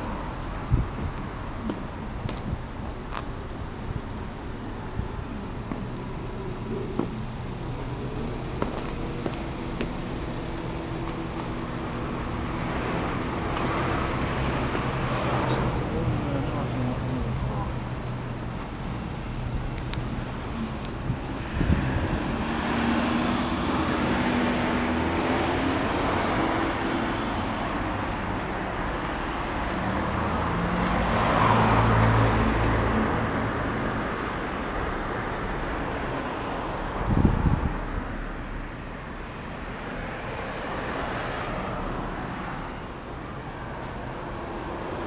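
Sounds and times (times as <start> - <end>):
cars passing: 0.0 - 45.0.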